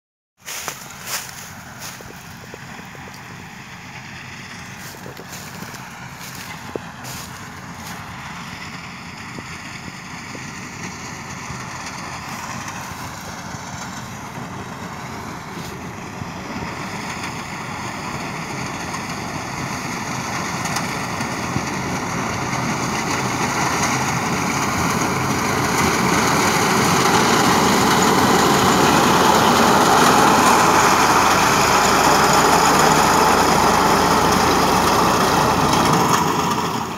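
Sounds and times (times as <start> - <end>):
reaper cutting stalks: 0.4 - 8.7, 10.4 - 36.3
tractor engine under load: 0.4 - 36.9.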